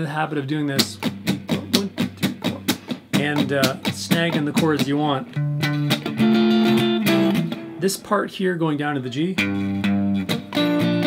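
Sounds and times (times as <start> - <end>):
electric guitar muted strums: 0.7 - 7.9, 9.4 - 11.0.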